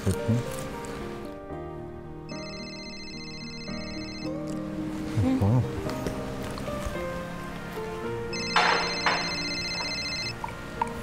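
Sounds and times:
soft background music: 0.0s - 11.0s
mobile phone ringing: 2.3s - 4.5s, 8.3s - 10.4s.

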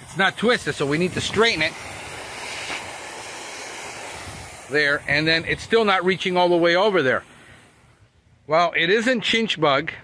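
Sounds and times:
lawn sprinkler spraying hiss: 0.0s - 8.2s.

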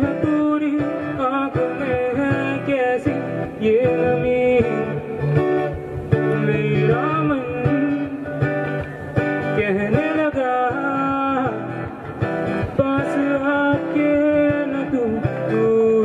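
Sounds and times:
man singing into a microphone: 0.0s - 16.0s
strummed guitar chords: 0.0s - 16.0s.

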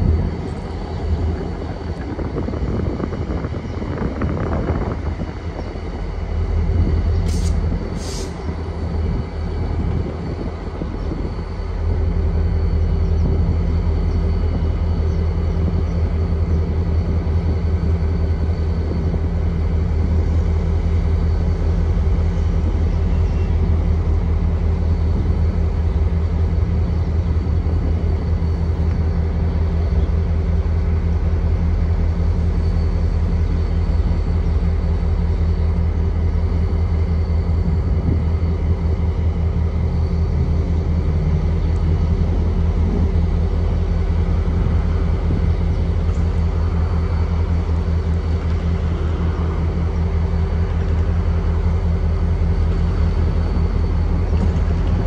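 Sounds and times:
locomotive engines idling: 0.0s - 55.0s.

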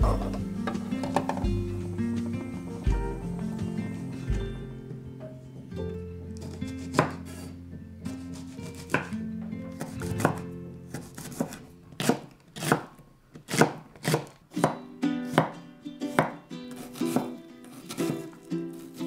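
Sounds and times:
knife chopping on wooden board: 6.4s - 7.5s, 8.1s - 9.1s, 9.8s - 14.8s, 16.2s - 18.2s.

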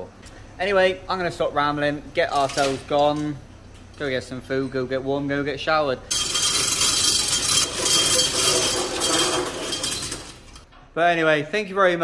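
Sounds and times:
metal roller shutter rattling: 6.1s - 10.7s.

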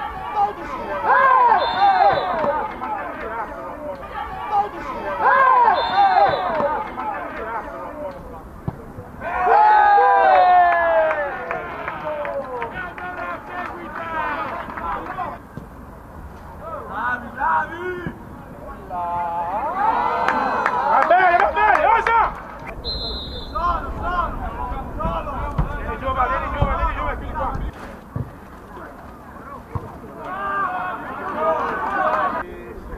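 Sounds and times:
voices shouting: 0.0s - 8.2s, 9.1s - 15.4s, 16.6s - 27.5s, 29.4s - 32.4s
high whistle-like tones: 22.8s - 23.7s.

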